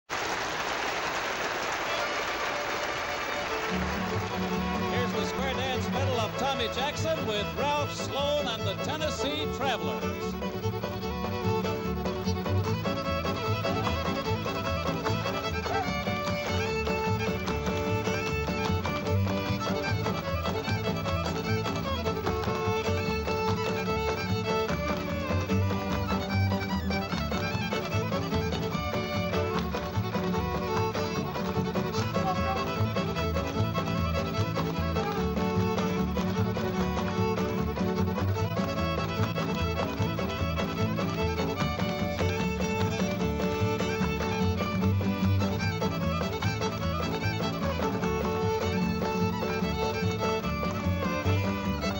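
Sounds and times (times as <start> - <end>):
string band with drums: 0.1 - 51.9
fiddle playing dance tune: 1.5 - 51.9.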